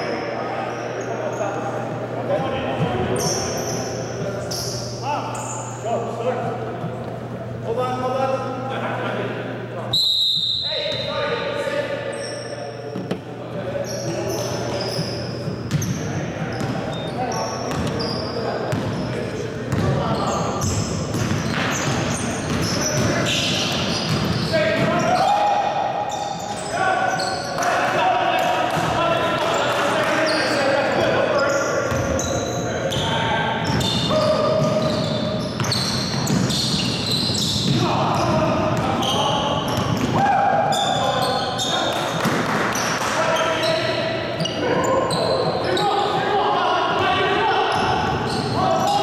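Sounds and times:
sneaker squeaks: 0.0s - 7.4s, 9.9s - 28.0s, 28.7s - 46.2s, 47.0s - 49.0s
players' voices: 0.0s - 49.0s
basketball bouncing on wooden court: 15.6s - 16.8s, 17.7s - 18.0s, 19.7s - 20.0s, 20.6s - 25.0s.

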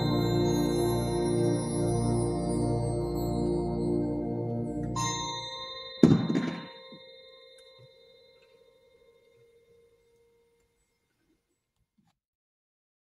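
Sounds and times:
ringing bell-like tones: 0.0s - 10.9s
loud percussive hit: 6.0s - 7.1s.

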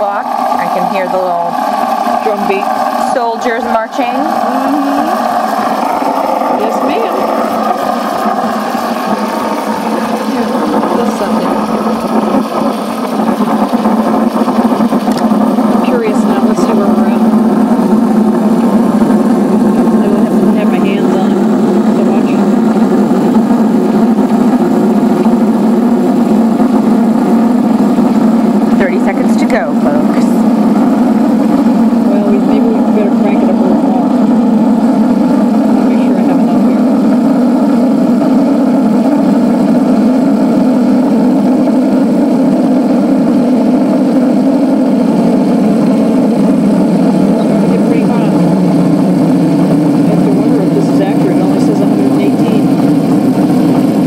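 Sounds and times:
espresso machine pump droning: 0.0s - 54.0s
steam frothing milk: 0.0s - 54.0s.

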